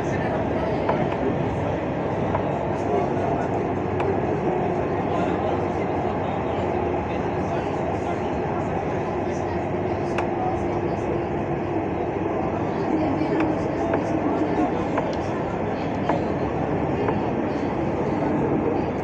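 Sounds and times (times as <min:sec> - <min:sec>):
tram hum: 0:00.0 - 0:19.0
tram wheels rumbling on rail: 0:00.0 - 0:19.0.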